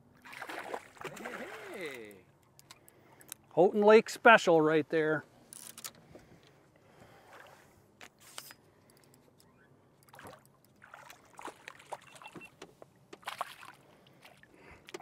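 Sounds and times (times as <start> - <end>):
fish splashing at water surface: 10.1 - 12.2, 13.2 - 14.5.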